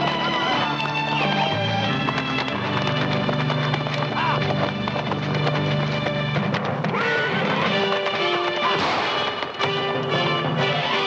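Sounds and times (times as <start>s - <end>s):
film score music: 0.0s - 11.0s
horse hoofbeats galloping: 0.0s - 11.0s.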